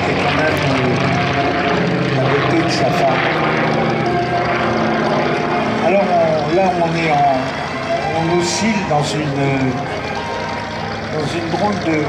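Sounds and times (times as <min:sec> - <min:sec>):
propeller engines droning: 0:00.0 - 0:12.0.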